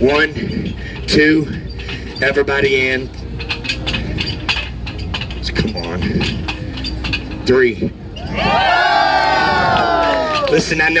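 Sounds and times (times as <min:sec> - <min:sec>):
metal ladder clinking and knocking: 0:00.0 - 0:08.3.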